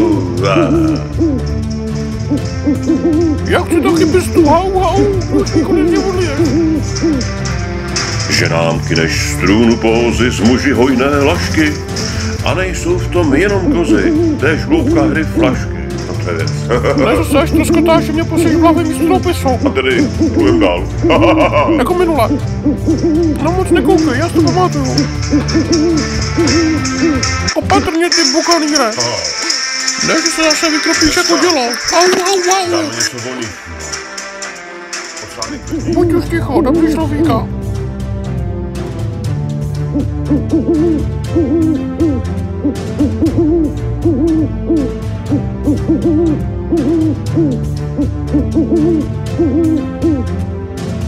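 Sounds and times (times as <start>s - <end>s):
background music: 0.0s - 51.0s
owl-like hoots: 0.4s - 1.6s, 2.2s - 3.5s, 5.0s - 7.4s, 13.6s - 15.7s, 20.0s - 21.4s, 22.3s - 23.5s, 24.3s - 27.5s, 39.9s - 50.4s.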